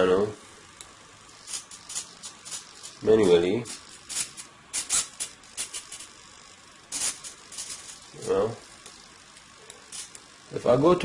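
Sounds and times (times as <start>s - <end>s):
small motor high-pitched bursts: 0.7s - 11.0s.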